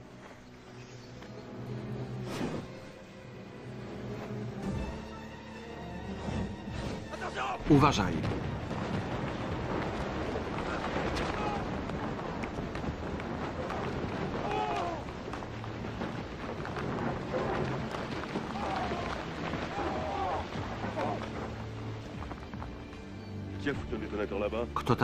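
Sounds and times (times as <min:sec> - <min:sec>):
rock debris falling: 0:07.2 - 0:24.4.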